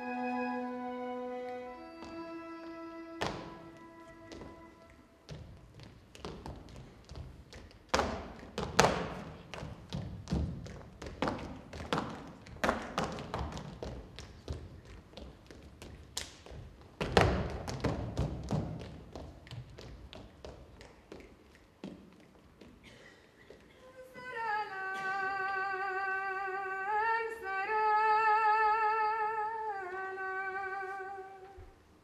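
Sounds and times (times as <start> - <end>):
dancers' feet thumping on stage: 3.2 - 23.8
loud foot stamps: 16.2 - 19.8.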